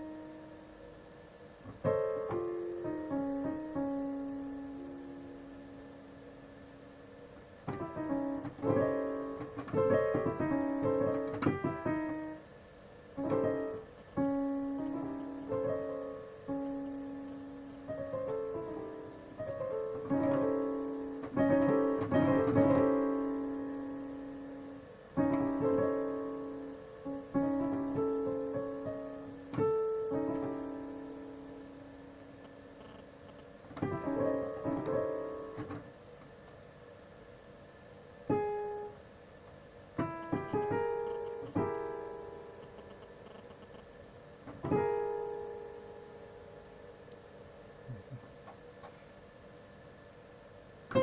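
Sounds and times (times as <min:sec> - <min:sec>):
digital piano chords: 0:00.0 - 0:06.7, 0:07.6 - 0:35.9, 0:38.2 - 0:39.1, 0:40.0 - 0:48.0.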